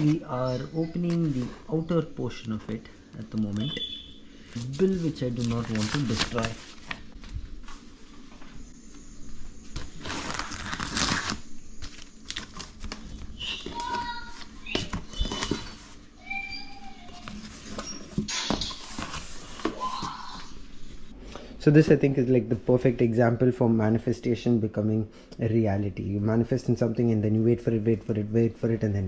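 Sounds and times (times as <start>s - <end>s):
tape peeling: 4.6s - 7.3s, 9.7s - 15.9s.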